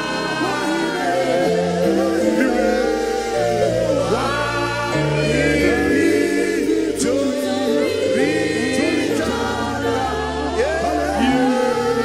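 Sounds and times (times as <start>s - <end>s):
men singing gospel: 0.0s - 12.0s.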